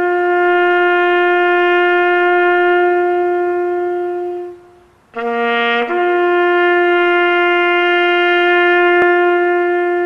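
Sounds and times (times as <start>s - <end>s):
horn blowing long note: 0.0s - 10.0s.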